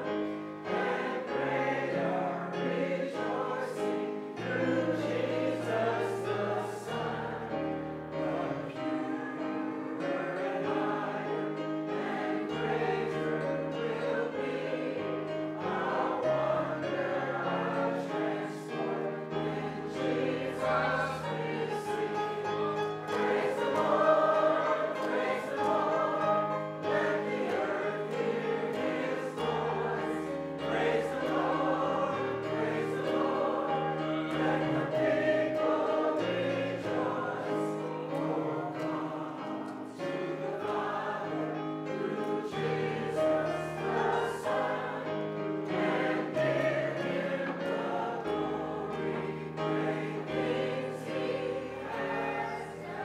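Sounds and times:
congregation singing a hymn: 0.0 - 53.0.

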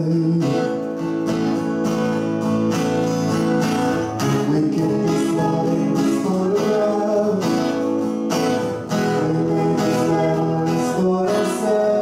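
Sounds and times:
acoustic guitar strumming: 0.0 - 12.0
person singing: 4.2 - 8.0, 8.7 - 12.0.

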